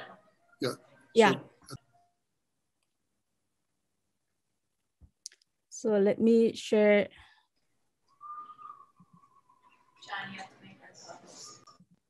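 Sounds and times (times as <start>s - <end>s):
faint whistle-like tone: 8.1s - 9.9s.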